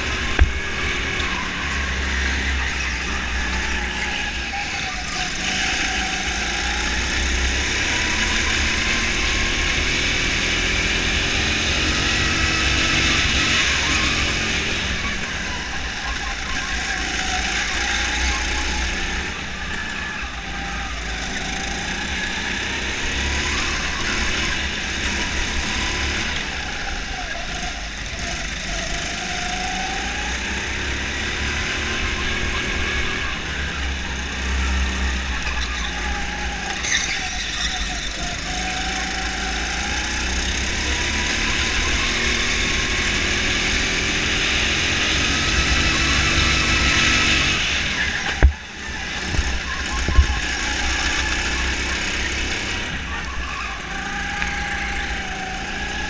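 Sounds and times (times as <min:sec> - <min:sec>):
go-kart engine revving: 0:00.0 - 0:56.0.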